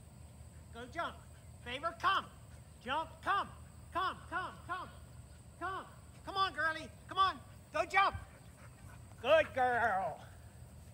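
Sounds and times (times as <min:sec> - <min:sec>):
man calling commands to dog: 0:00.7 - 0:08.4, 0:09.2 - 0:10.3.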